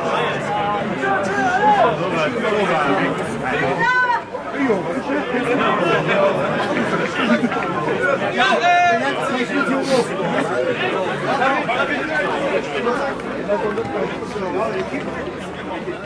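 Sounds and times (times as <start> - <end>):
overlapping chatter: 0.0 - 16.0.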